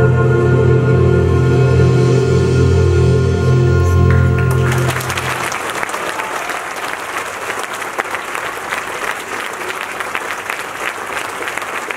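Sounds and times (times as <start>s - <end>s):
orchestra low note: 0.0s - 5.6s
audience applauding: 4.0s - 11.9s.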